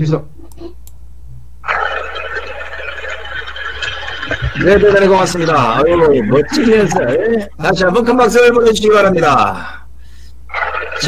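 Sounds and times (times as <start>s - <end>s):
people clapping: 1.6s - 7.1s
people cheering: 1.7s - 7.3s.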